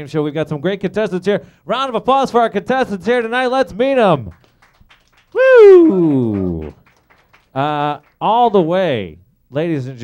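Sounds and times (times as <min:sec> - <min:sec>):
person's drawn-out falling cry: 0:05.4 - 0:06.4.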